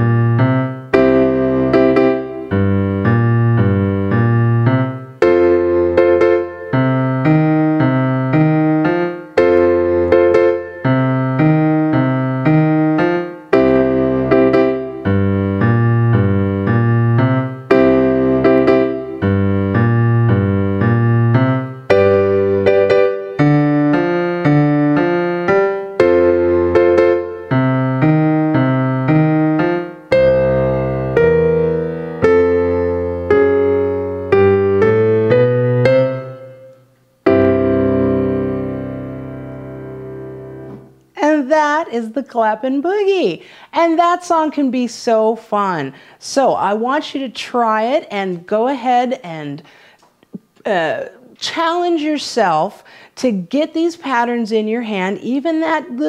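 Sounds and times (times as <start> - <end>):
blues boogie on piano: 0.0 - 41.5.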